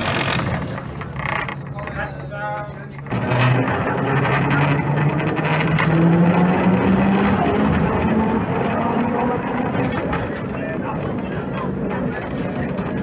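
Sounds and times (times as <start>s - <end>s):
tram body rattling: 0.0s - 13.0s
wheels running on rails: 0.0s - 13.0s
tram motor whine rising: 3.1s - 10.3s.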